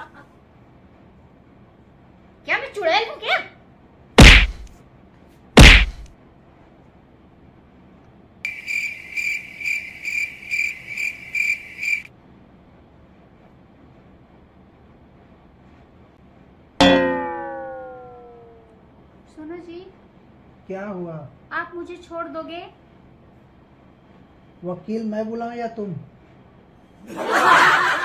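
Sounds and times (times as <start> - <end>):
loud slap-like whacks: 4.2 - 4.7, 5.6 - 6.1
ringing tones sliding lower: 16.8 - 18.8.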